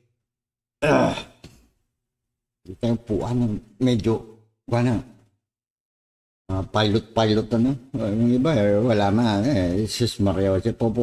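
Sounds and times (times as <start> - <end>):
man sighing with groan: 0.8 - 1.4.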